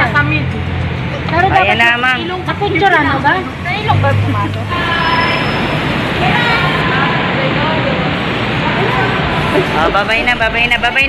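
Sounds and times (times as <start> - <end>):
faint voices talking: 0.0 - 11.0
traffic echoing in parking garage: 0.0 - 11.0.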